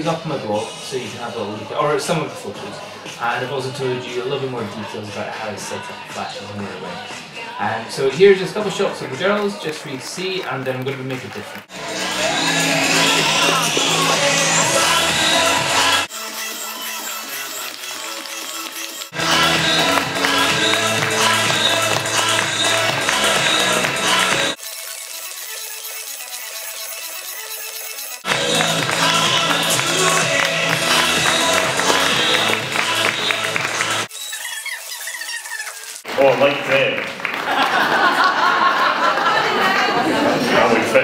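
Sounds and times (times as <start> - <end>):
loud music with a beat: 11.2 - 26.2, 27.1 - 34.1.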